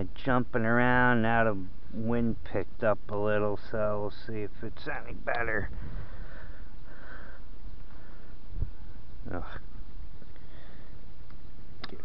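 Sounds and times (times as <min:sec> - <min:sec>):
wind buffeting microphone: 0:05.5 - 0:06.3, 0:08.4 - 0:09.0.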